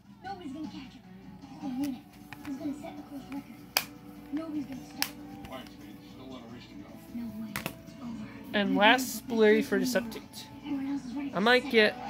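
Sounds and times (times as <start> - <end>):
television dialogue: 0.0 - 12.0
plastic case snapping shut: 7.6 - 7.8.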